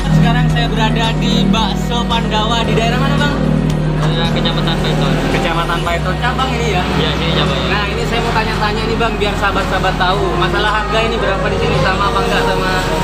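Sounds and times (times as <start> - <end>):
background music: 0.0 - 13.0
steady low bass: 0.0 - 13.0
voices talking: 0.0 - 13.0.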